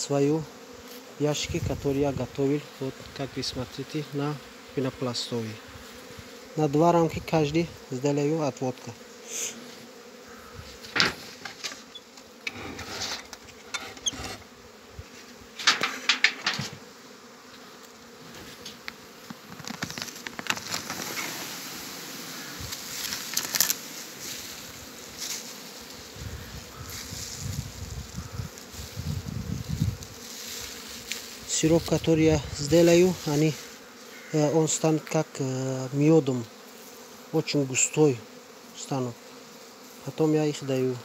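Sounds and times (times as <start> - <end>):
honeybees buzzing: 0.0 - 41.0
hive frames clicking and knocking: 10.8 - 14.4, 15.5 - 16.9, 18.3 - 21.3, 22.7 - 23.8.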